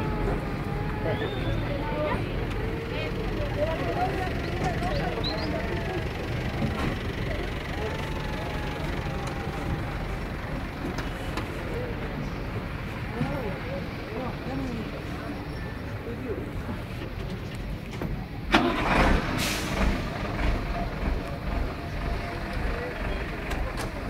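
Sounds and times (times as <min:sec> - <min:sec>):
people talking indistinctly: 0:00.0 - 0:18.5.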